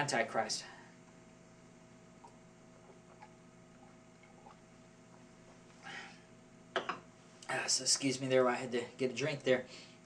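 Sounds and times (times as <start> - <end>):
low steady hum: 0.0 - 10.0
swallowing clicks: 2.2 - 5.3.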